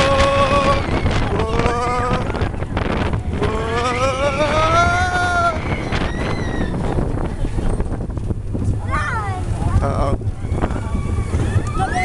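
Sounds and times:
rider whooping: 0.0 - 7.4, 10.2 - 12.0
roller coaster rumbling on track: 0.0 - 12.0
wind buffeting microphone: 0.0 - 12.0.

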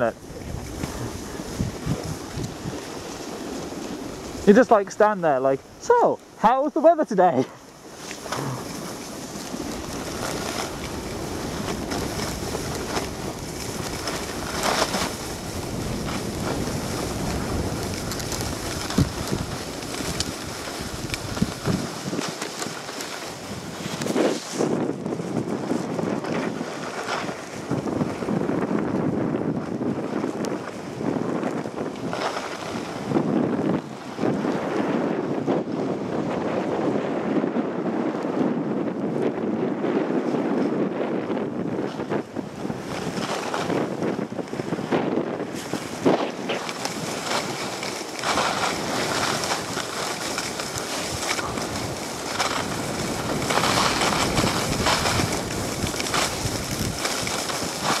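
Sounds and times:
snowboard sliding over snow: 0.0 - 58.0
wind buffeting microphone: 0.0 - 58.0.

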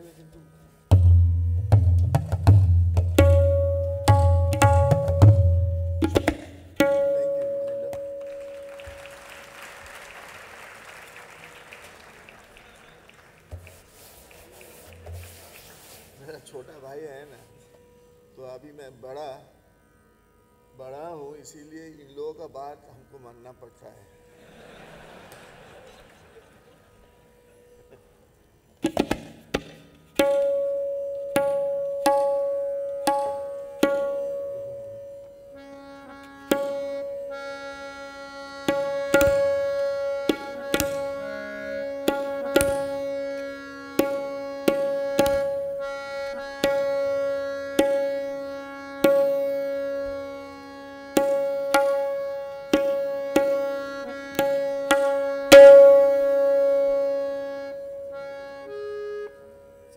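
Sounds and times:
tabla strokes: 0.0 - 17.9, 28.8 - 58.8
harmonium holding notes: 0.0 - 25.7, 30.0 - 59.9.

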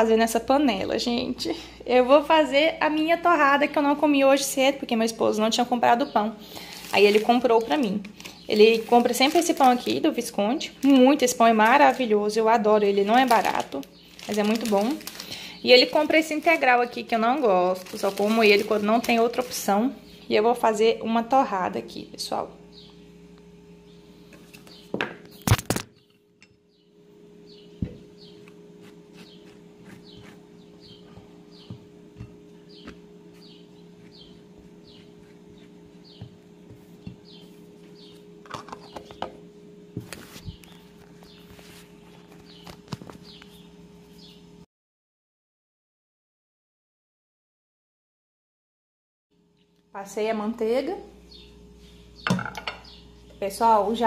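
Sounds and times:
steady hum: 0.0 - 44.7
bird chirping: 26.0 - 28.5, 29.2 - 36.4, 37.1 - 39.3, 51.3 - 53.3
plate set down on stone: 52.3 - 52.8.

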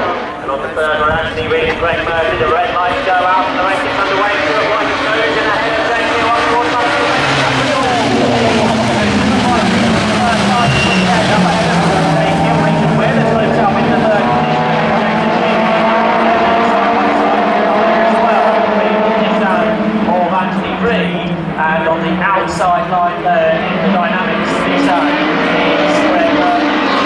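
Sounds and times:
race car engines revving: 0.0 - 27.0.

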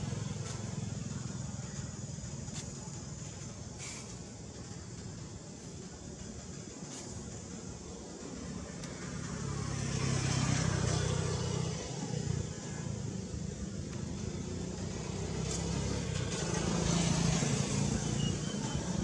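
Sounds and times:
vehicle engine humming: 0.0 - 19.0.

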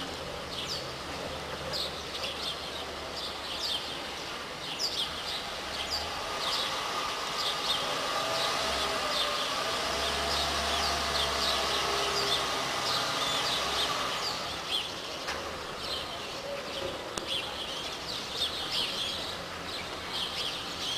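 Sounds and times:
small birds chirping: 0.0 - 20.9.

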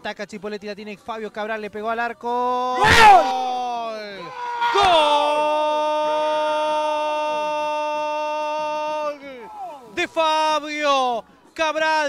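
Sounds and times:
man shouting long goal cry: 2.5 - 10.0.

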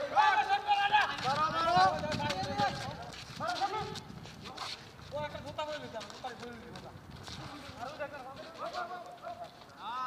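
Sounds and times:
running feet and ball tapping: 0.4 - 10.0.

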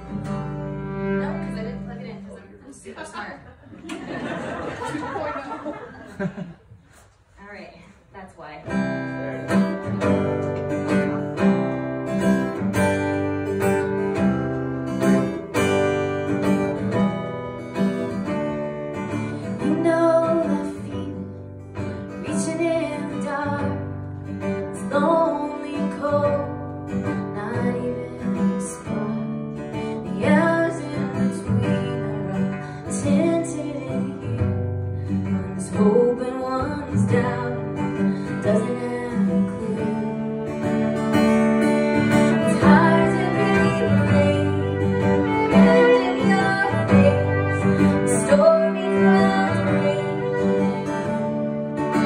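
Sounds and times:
fiddle bowing: 0.0 - 2.4, 38.0 - 52.0
strummed acoustic guitar: 0.0 - 3.3, 8.6 - 52.0
woman singing: 19.4 - 41.1, 42.0 - 52.0.

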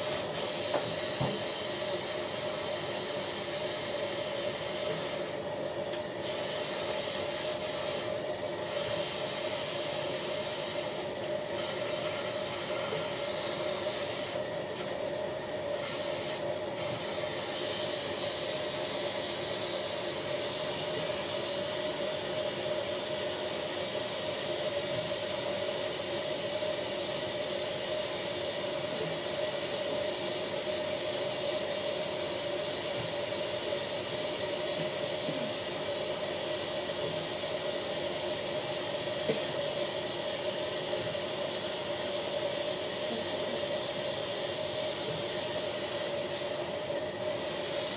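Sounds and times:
dental suction hissing: 0.0 - 22.7, 32.5 - 47.9.

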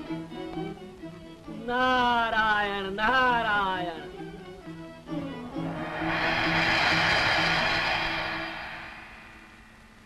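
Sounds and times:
low held notes: 4.7 - 10.0
cymbal-like crash swell: 5.1 - 10.0.

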